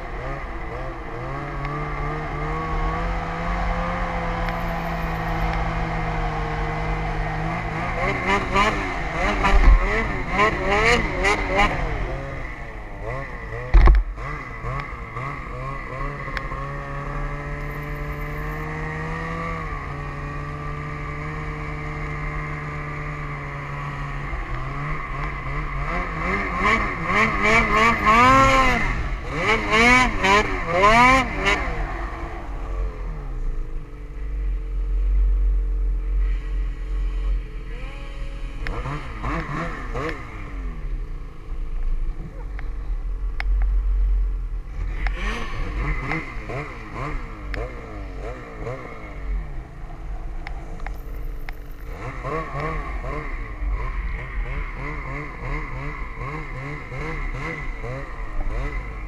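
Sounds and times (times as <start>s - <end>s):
snowmobile engine revving: 0.0s - 43.1s, 44.7s - 59.0s.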